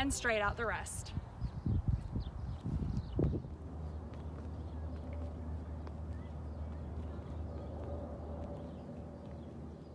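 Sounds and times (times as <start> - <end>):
wind rumble on microphone: 0.0 - 9.9
footfalls on concrete: 2.0 - 9.9.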